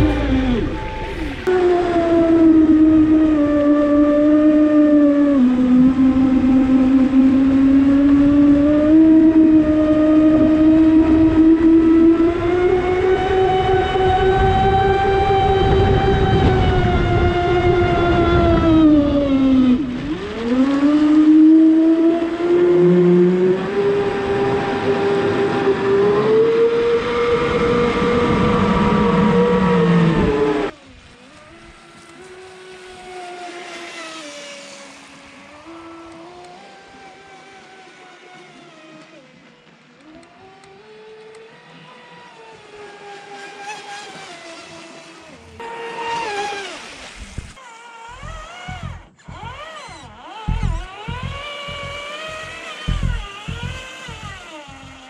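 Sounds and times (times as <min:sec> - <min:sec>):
electric motor whining: 0:00.0 - 0:55.0
water rushing against hull: 0:00.0 - 0:55.0.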